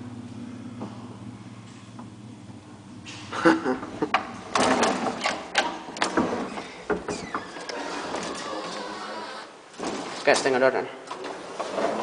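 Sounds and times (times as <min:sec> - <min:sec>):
lift mechanical running noise: 0:00.0 - 0:12.0.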